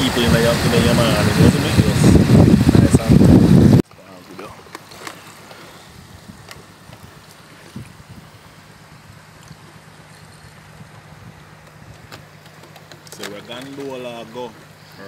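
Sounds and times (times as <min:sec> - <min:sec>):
faint water sounds: 0:00.0 - 0:03.1, 0:03.8 - 0:15.0.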